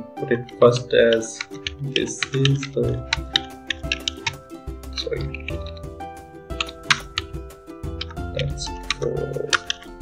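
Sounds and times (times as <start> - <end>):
background music with sustained notes: 0.0 - 10.0
keyboard key clicks: 1.0 - 4.4, 8.9 - 9.8.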